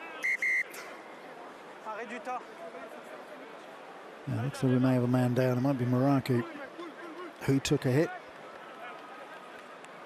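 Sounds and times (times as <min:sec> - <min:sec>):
referee's whistle blasts: 0:00.0 - 0:00.9
faint crowd noise: 0:00.0 - 0:10.0.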